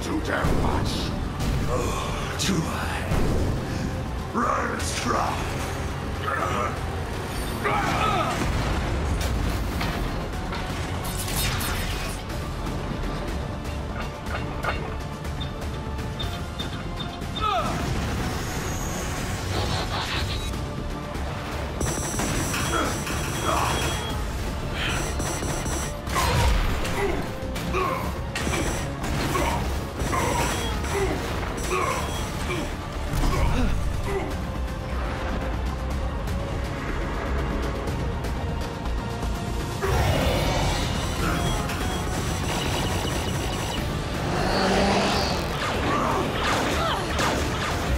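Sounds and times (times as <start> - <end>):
background music: 0.0 - 47.9
grunts and yells: 6.2 - 8.6, 17.4 - 17.9, 26.1 - 34.5, 39.8 - 41.5, 44.2 - 47.2.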